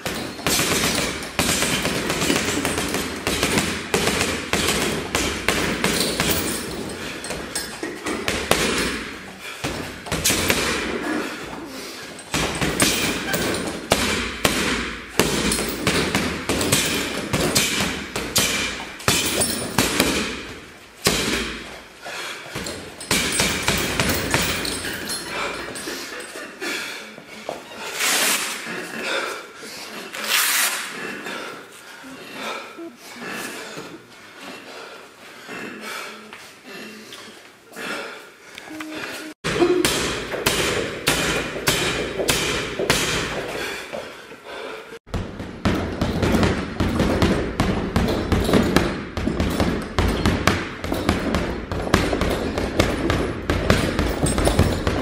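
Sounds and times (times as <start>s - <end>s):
gloves punching heavy bags: 0.0s - 26.3s, 38.8s - 44.1s, 45.1s - 55.0s.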